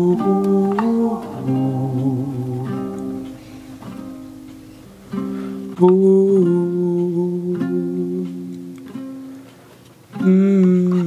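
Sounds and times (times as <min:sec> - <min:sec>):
soulful vocal sample: 0:00.0 - 0:08.7
sung ooh with vibrato: 0:00.0 - 0:09.5.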